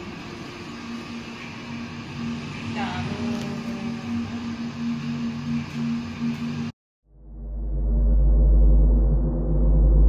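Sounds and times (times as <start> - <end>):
low droning hum: 0.0 - 10.0
regular pulsing tone: 0.0 - 10.0.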